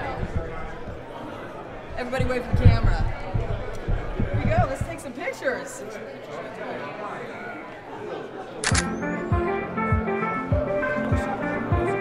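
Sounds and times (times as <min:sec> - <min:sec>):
crowd chatter: 0:00.0 - 0:12.0
camera shutter clicking: 0:08.6 - 0:09.0
music: 0:08.7 - 0:12.0.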